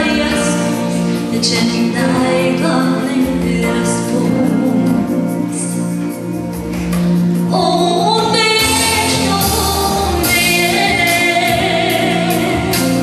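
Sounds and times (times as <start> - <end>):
woman singing into microphone: 0.0 - 6.1, 7.5 - 13.0
instrumental accompaniment with beat: 0.0 - 13.0.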